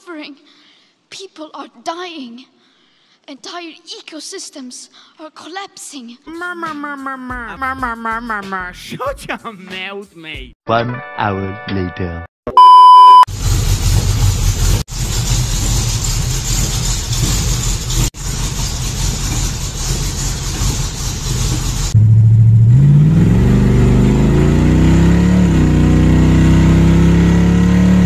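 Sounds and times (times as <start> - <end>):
rough car engine running: 13.3 - 28.0
car engine accelerating from inside: 19.3 - 28.0.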